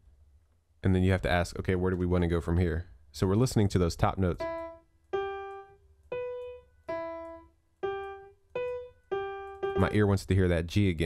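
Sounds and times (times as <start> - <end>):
single piano notes: 4.3 - 10.1.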